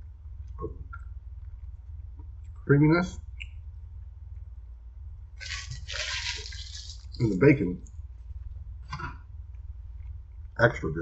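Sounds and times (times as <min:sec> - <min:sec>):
low hum: 0:00.0 - 0:11.0
man chewing food: 0:05.4 - 0:07.2.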